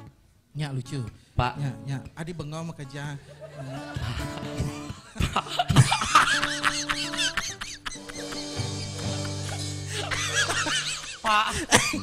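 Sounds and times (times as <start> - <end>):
band music: 0.0 - 11.5
high-pitched laughter: 3.5 - 12.0.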